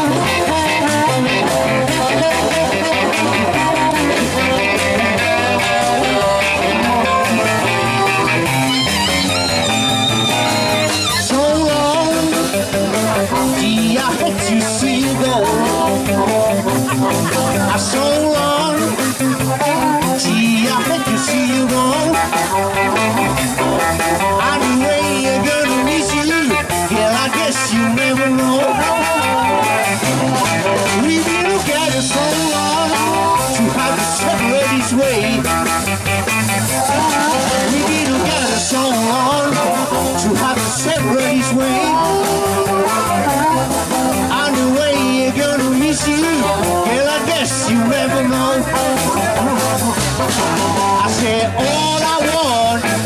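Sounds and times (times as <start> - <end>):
amplified harmonica: 0.0 - 48.0
bass guitar: 0.0 - 53.0
drums: 0.0 - 53.0
electric guitar: 0.0 - 53.0.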